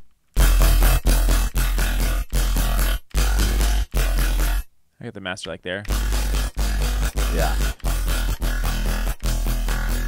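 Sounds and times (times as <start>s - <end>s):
deep sub-bass: 0.4s - 4.6s, 5.9s - 10.0s
distorted dubstep bass growl: 0.4s - 4.7s, 5.9s - 10.0s.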